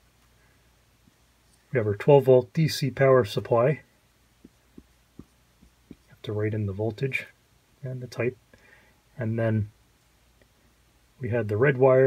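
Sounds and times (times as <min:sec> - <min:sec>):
marker tapping on paper: 0:04.4 - 0:06.1.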